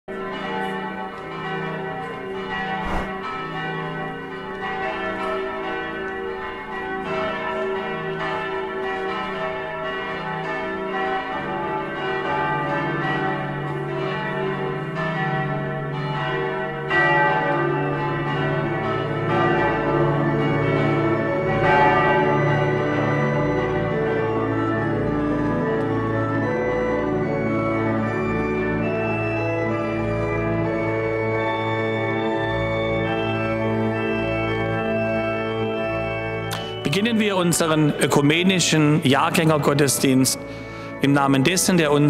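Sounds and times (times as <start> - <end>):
church bells pealing: 0.1 - 42.0.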